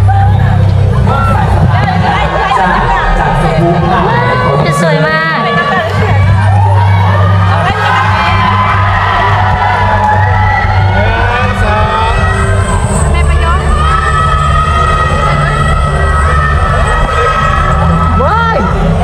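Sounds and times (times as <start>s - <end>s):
crowd voices and cheering: 0.0s - 19.0s
loud music with held bass notes: 0.0s - 19.0s.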